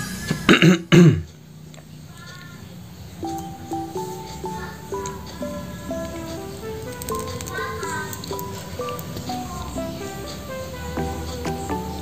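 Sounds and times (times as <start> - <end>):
man's cough-like vocal bursts: 0.4 - 1.3
background music with steady beat: 3.0 - 12.0.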